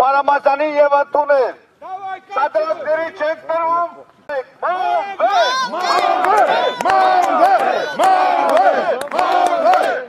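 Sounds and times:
crowd of men shouting: 4.6s - 10.0s
hand claps: 5.9s - 10.0s.

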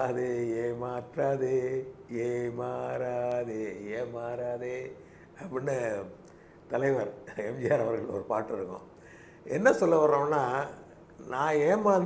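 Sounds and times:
man chanting: 0.0s - 8.8s, 9.5s - 12.0s.

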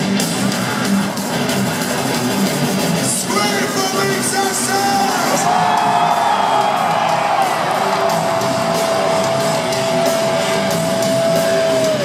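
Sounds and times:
heavy metal band playing: 0.0s - 12.0s.

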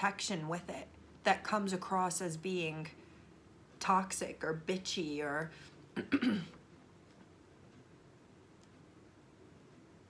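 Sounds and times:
woman clearing her throat: 6.0s - 6.6s.

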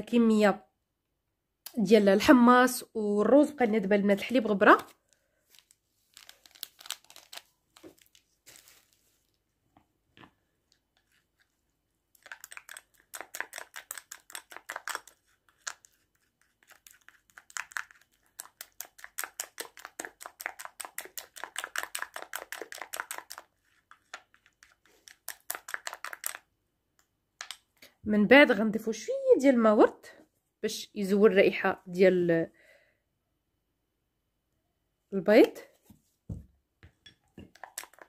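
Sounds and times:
spoon stirring paste in glass bowl: 10.2s - 26.5s, 36.9s - 38.0s.

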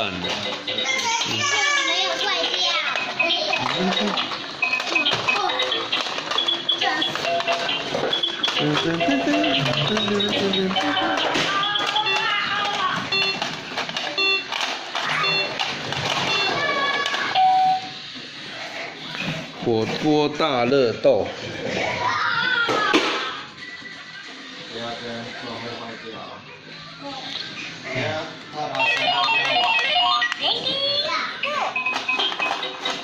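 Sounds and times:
electronic toy beeping: 0.0s - 18.1s, 28.7s - 33.0s.

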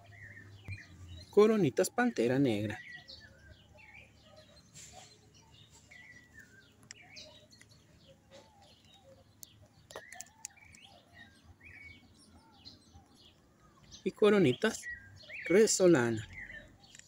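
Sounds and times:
faint birds chirping: 0.0s - 17.0s
faint sharp clicks: 8.7s - 10.9s.

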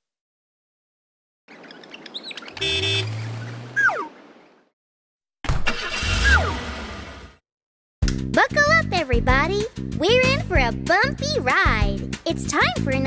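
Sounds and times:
horn honk: 2.6s - 3.8s.

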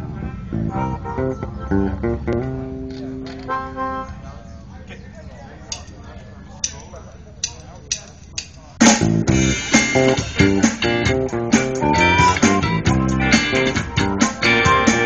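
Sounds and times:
blues-rock band playing: 0.0s - 4.0s, 8.8s - 15.0s.

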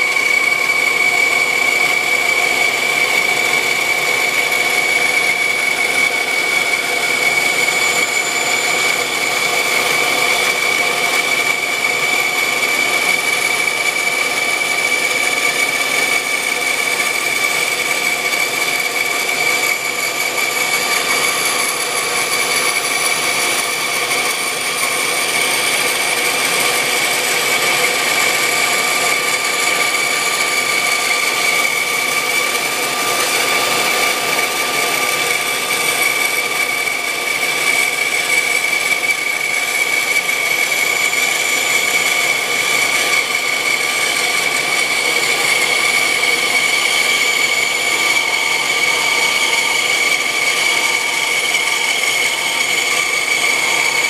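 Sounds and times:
band saw cutting wood: 0.0s - 54.0s.

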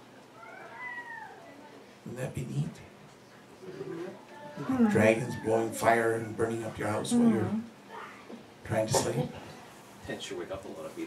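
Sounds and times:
cat meowing: 0.4s - 1.5s.

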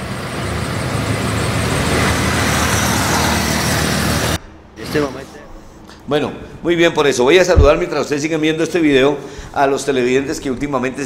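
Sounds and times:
car approaching: 0.0s - 5.0s.

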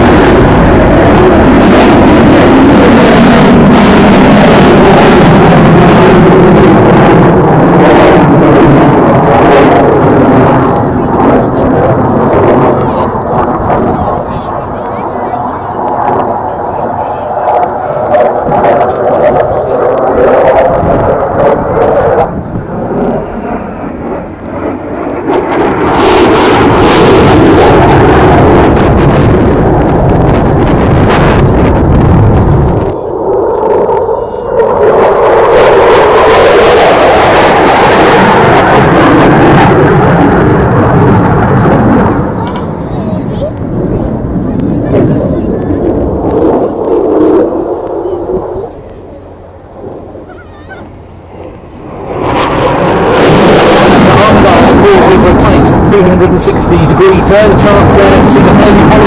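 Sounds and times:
loud jet engine noise: 0.0s - 59.0s.

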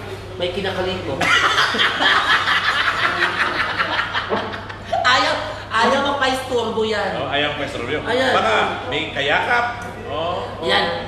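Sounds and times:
men laughing heartily: 1.2s - 5.0s.

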